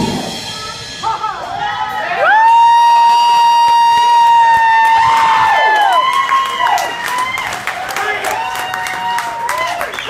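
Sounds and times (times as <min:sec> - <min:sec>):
crowd cheering: 0:01.4 - 0:10.0.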